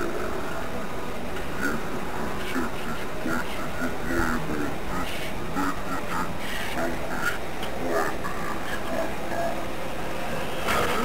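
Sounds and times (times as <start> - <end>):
fast garbled cartoon voices: 1.6 - 9.6.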